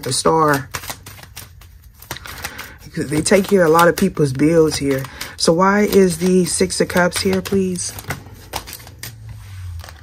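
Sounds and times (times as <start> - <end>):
cards rustling while shuffled: 0.0 - 10.0
cards snapping and tapping: 0.0 - 10.0.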